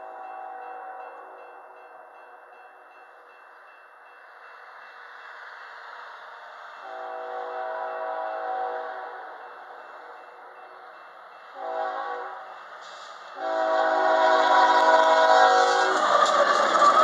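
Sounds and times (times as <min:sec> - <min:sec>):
rushing noise of train: 0:00.0 - 0:17.0
locomotive air horn blasts: 0:06.8 - 0:09.1, 0:11.6 - 0:12.4, 0:13.4 - 0:16.0.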